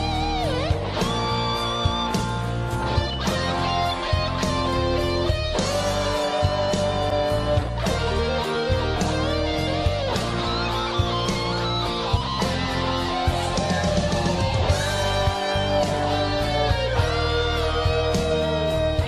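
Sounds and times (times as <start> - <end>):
bass: 0.0 - 19.0
rock ballad guitar melody: 0.0 - 19.0.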